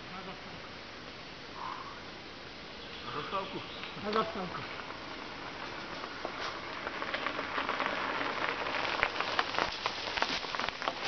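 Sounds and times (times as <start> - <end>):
bicycle tyres crunching on gravel: 3.0 - 11.0.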